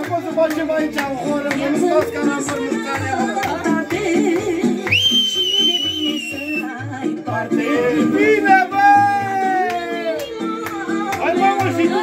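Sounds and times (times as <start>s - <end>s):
dance music with steady beat: 0.0s - 12.0s
person whistling loudly: 4.8s - 6.7s.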